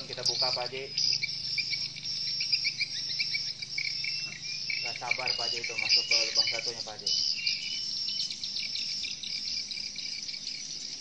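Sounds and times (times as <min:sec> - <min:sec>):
swiftlets twittering: 0:00.0 - 0:11.0.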